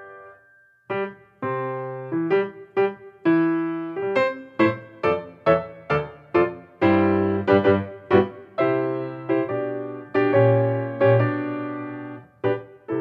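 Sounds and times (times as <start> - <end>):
piano chords and notes: 0.0 - 13.0.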